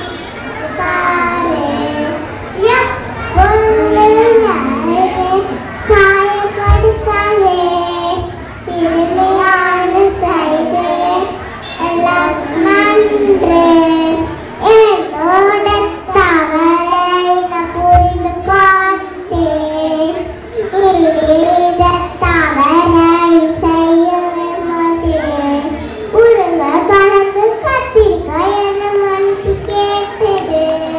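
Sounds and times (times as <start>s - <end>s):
children singing in unison: 0.0s - 30.9s.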